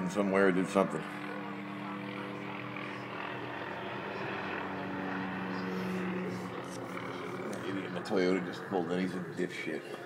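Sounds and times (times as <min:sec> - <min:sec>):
helicopter rotor drone: 0:00.0 - 0:10.0.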